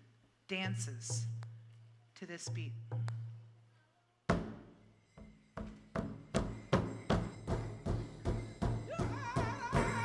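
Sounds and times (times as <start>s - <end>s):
large hide drum beating: 5.6s - 10.0s
person singing: 8.9s - 10.0s.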